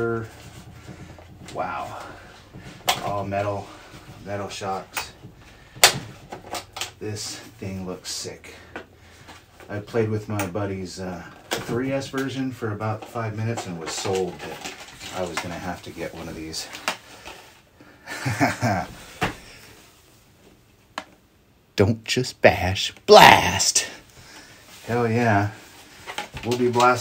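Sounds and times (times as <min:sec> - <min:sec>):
man chuckling: 0:18.0 - 0:19.1.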